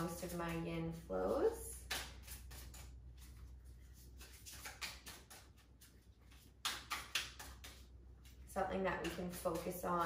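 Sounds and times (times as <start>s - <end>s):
cards being shuffled: 1.8s - 8.5s.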